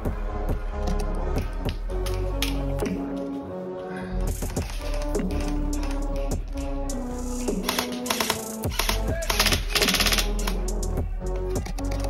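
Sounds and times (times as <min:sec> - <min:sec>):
background music: 0:00.0 - 0:12.0
airsoft rifle rapid clicking: 0:07.6 - 0:10.6.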